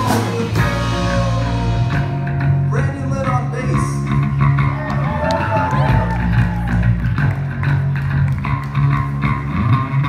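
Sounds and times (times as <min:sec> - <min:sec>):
drum kit hits: 0:00.0 - 0:03.4
electric bass notes: 0:00.0 - 0:10.0
electric guitars: 0:00.0 - 0:10.0.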